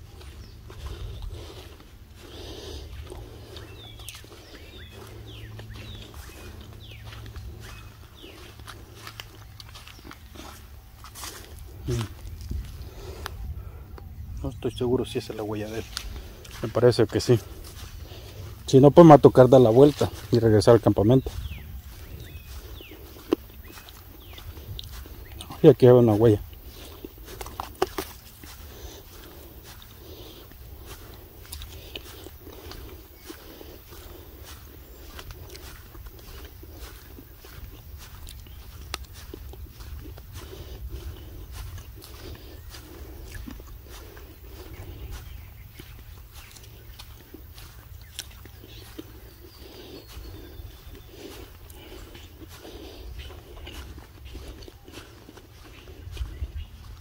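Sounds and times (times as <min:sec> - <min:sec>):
low microphone rumble: 0:00.0 - 0:18.8, 0:19.6 - 0:25.6, 0:26.4 - 0:57.0
footsteps on dirt: 0:00.0 - 0:57.0.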